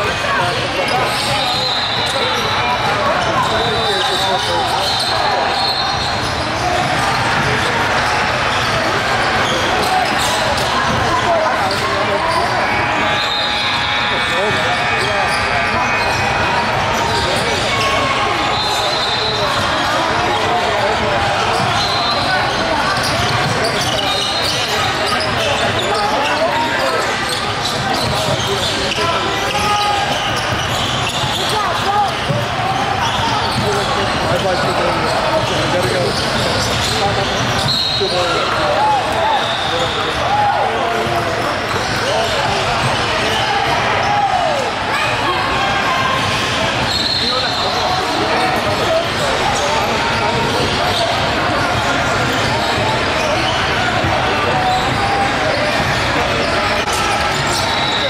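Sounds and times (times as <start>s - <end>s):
echoing crowd chatter: 0.0s - 58.0s.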